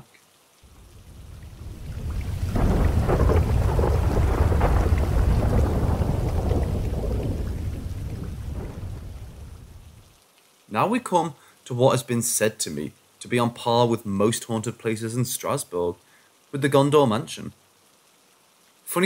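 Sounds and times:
deep roll of thunder: 0.7s - 10.0s.

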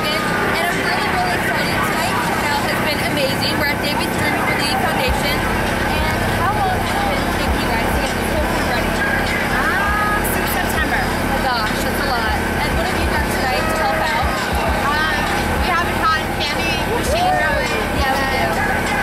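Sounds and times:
background crowd chatter: 0.0s - 19.0s
people talking: 0.0s - 19.0s
steady low rumble: 0.0s - 19.0s.

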